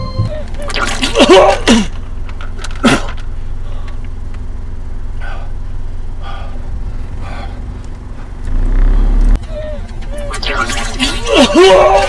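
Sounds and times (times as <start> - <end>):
car engine idling and accelerating: 1.8 - 10.2.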